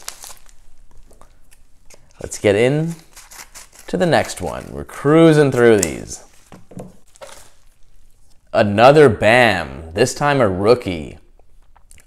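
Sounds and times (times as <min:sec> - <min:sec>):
paper envelope crinkling: 0:00.0 - 0:01.3, 0:01.9 - 0:08.0.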